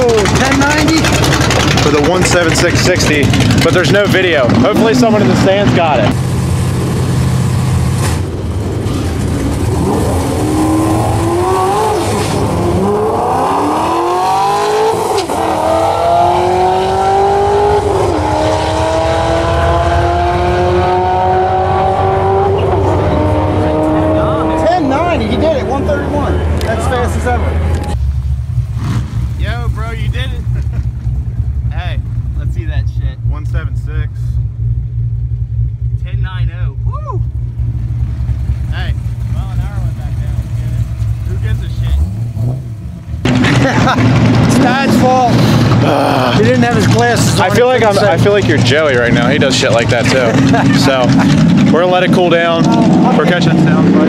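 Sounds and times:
car engine at full throttle: 0:00.0 - 0:54.0.

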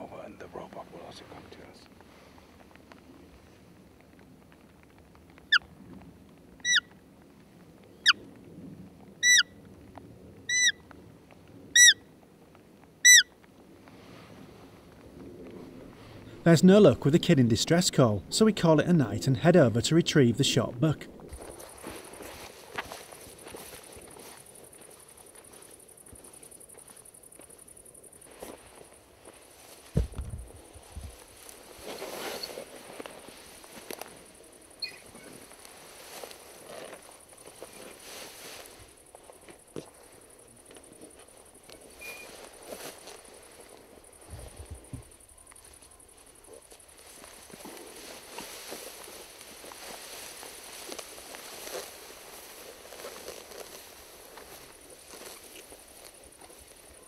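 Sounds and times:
footsteps in long grass: 0:13.8 - 0:57.0
carcass dragged through grass: 0:21.1 - 0:25.8, 0:30.8 - 0:34.2, 0:35.0 - 0:39.3, 0:46.4 - 0:57.0
soft bump: 0:29.9 - 0:30.5.

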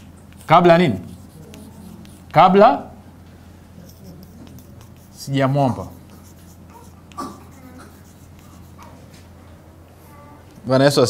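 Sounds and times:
steady low hum: 0:00.0 - 0:10.4
chalk scratching on blackboard: 0:00.3 - 0:02.6, 0:03.8 - 0:09.0.

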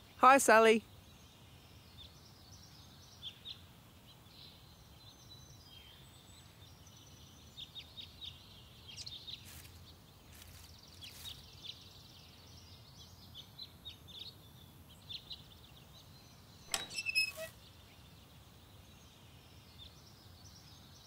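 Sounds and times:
metal gate clicking and squeaking: 0:16.7 - 0:17.6
bird chirps: 0:16.7 - 0:18.0.

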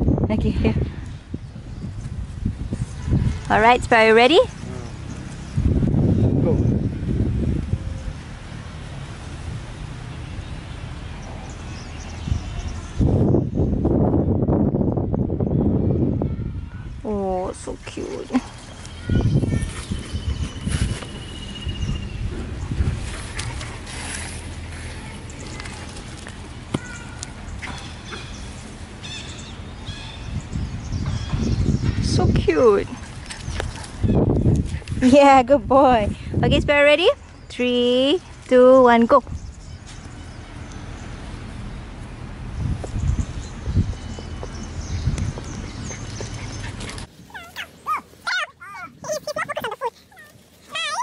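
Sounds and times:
wind rumble on microphone: 0:00.0 - 0:51.0
small dog whining: 0:47.3 - 0:51.0.

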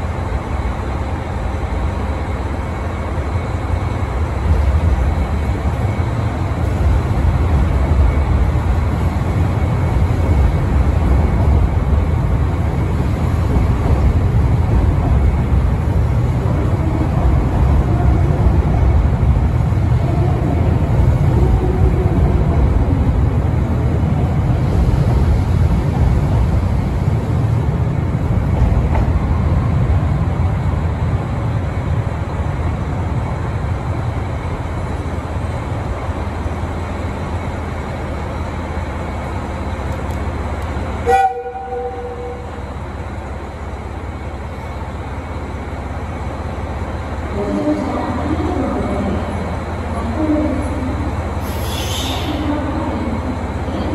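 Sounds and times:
train wheels rumbling: 0:00.0 - 0:53.9
train horn toot: 0:41.0 - 0:42.5.

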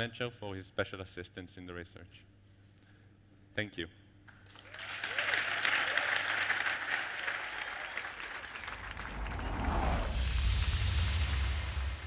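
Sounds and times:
audience applauding: 0:04.4 - 0:10.2
deep rumble: 0:08.6 - 0:12.0.

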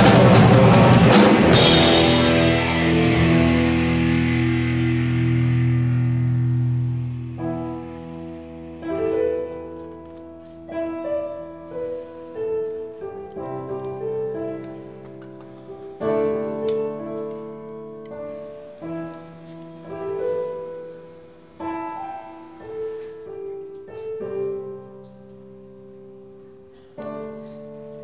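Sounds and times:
distorted electric guitar chord: 0:00.0 - 0:08.3
sustained keyboard chords: 0:00.0 - 0:28.0.

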